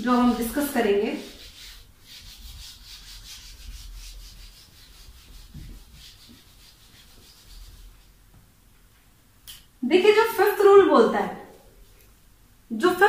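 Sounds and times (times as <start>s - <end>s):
whiteboard being wiped: 0.0s - 8.3s.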